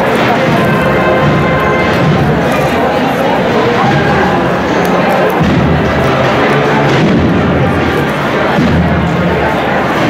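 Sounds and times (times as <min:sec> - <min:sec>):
street crowd noise: 0:00.0 - 0:10.0.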